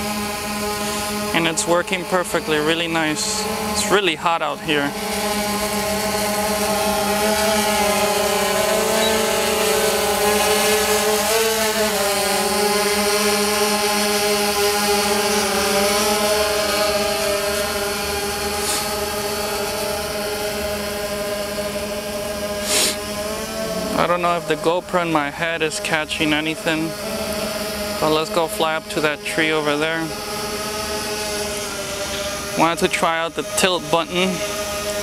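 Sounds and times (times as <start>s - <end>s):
drone propellers buzzing: 0.0s - 35.0s.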